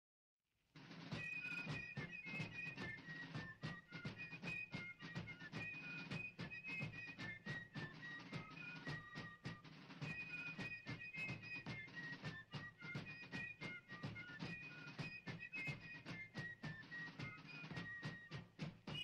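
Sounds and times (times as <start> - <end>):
rapid drum strokes: 0.8 - 19.0.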